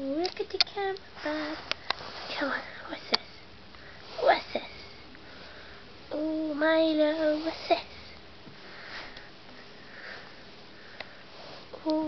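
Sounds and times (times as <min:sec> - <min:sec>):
soft breathy sniffs: 0:01.2 - 0:03.0, 0:07.3 - 0:11.8.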